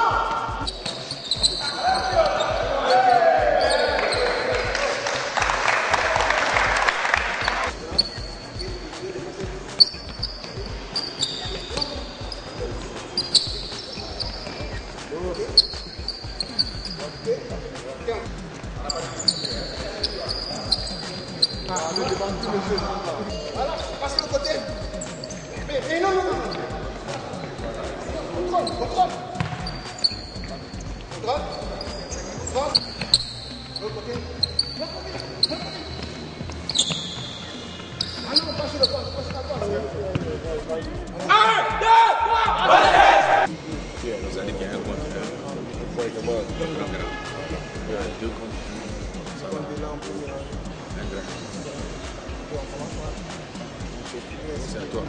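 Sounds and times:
sneaker squeaks: 0.0 - 4.7, 7.4 - 41.2
scattered voices: 0.0 - 55.0
basketballs bouncing on hardwood: 29.4 - 29.8.

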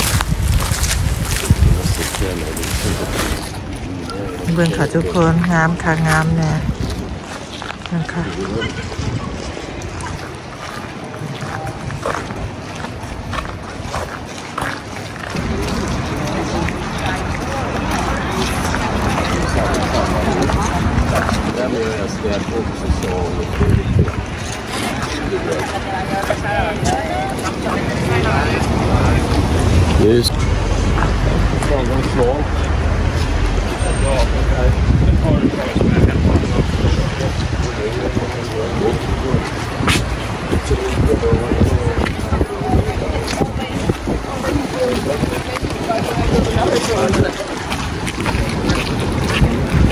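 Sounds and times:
steady low rumble: 0.0 - 4.0
indistinct voices: 0.0 - 49.9
wind rumble on microphone: 0.0 - 49.9
people talking: 1.2 - 6.7, 7.8 - 10.4, 15.2 - 49.9.

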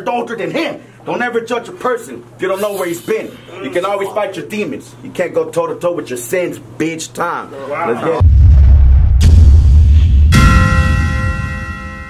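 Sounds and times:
deep rumbling boom: 8.2 - 11.6
bright metallic bell hit: 10.3 - 12.0.

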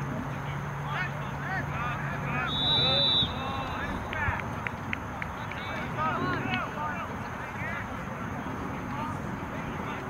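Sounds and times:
outdoor background noise: 0.0 - 10.0
distant shouting: 0.4 - 10.0.

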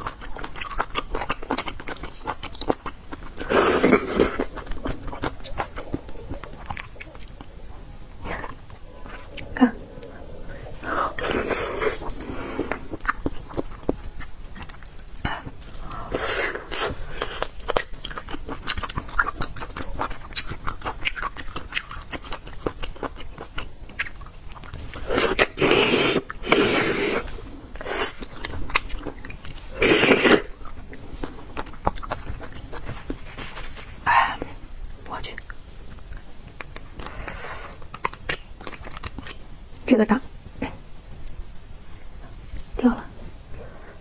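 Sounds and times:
close-miked chewing and biting: 0.0 - 39.9, 40.7 - 41.7
wet mouth clicks: 34.4 - 39.9.

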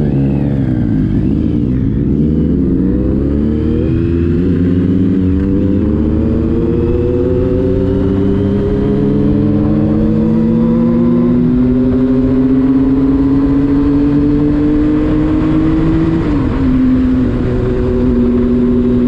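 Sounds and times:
motorcycle engine accelerating: 0.0 - 19.0.

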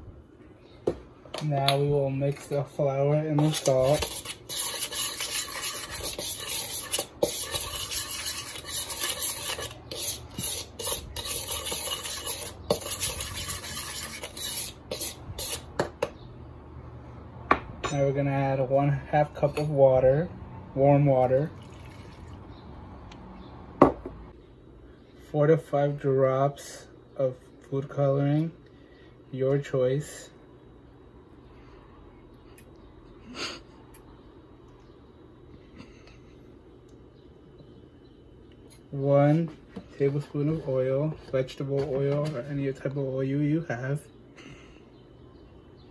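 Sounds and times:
steady low hum: 0.0 - 45.9
spoon scraping flour in bowl: 3.2 - 16.1.

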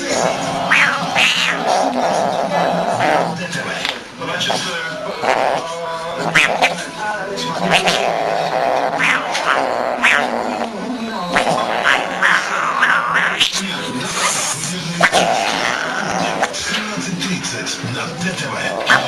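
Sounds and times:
cat growling and yowling: 0.6 - 2.5, 6.3 - 6.8, 7.6 - 10.7, 11.3 - 13.5.

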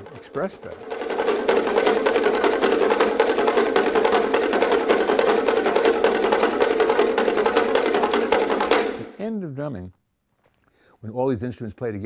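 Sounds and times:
bongo drums struck with sticks: 0.0 - 9.2.

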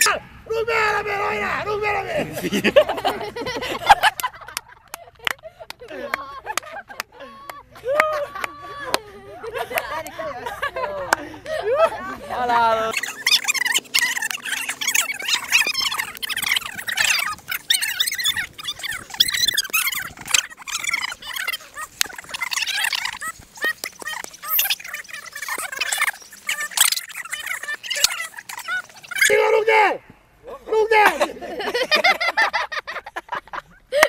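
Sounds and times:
people chattering and shouting: 10.4 - 30.7.

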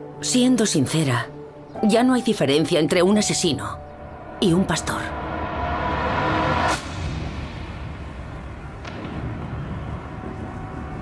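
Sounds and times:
low rumbling ambience: 3.8 - 11.0
faint swish: 5.1 - 9.0.

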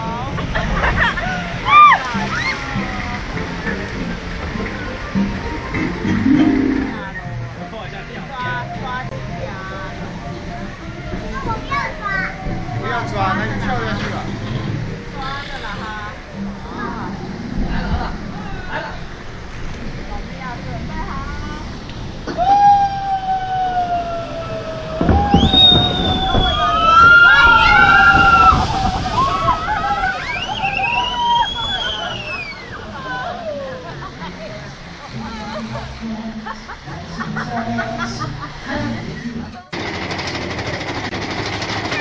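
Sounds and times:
rushing splashing water: 0.0 - 7.7, 23.1 - 38.7
roller coaster rattling on track: 9.6 - 22.8, 23.8 - 32.9, 39.7 - 42.0
riders screaming: 22.3 - 33.8.

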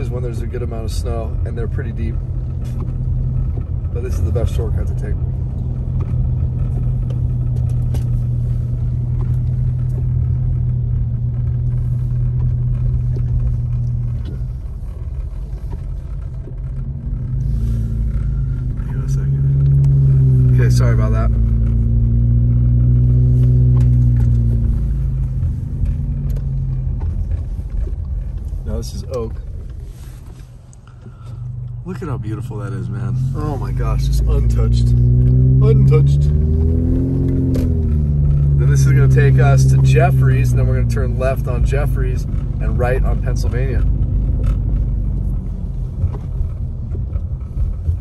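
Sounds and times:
car engine rumble: 0.0 - 48.0
tyres on snowy road: 0.0 - 48.0.

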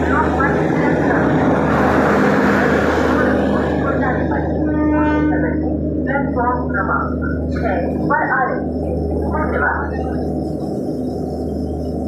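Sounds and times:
train coaches rumbling past: 0.0 - 12.0.

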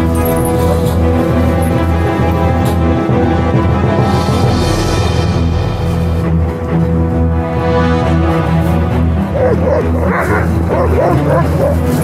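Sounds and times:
background music sustained tones: 0.0 - 12.0
dogs whining and yipping: 9.4 - 12.0.

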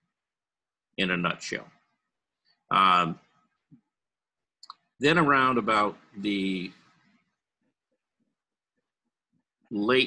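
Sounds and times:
mouth click: 4.6 - 4.9.

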